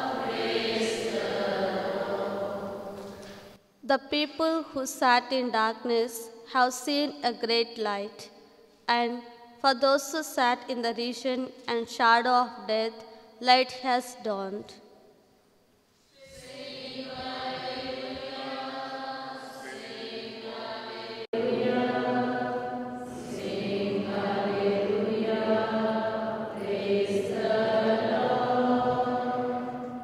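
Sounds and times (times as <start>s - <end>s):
church choir singing: 0.0s - 3.6s, 16.2s - 30.0s.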